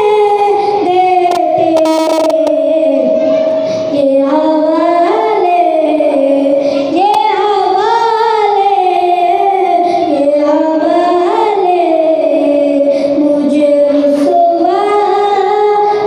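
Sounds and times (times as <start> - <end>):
boy singing unaccompanied: 0.0 - 16.0.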